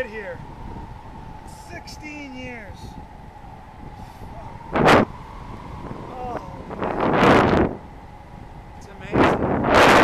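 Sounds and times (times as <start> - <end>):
steady airflow noise: 0.0 - 10.0
wind gust buffeting microphone: 0.0 - 10.0.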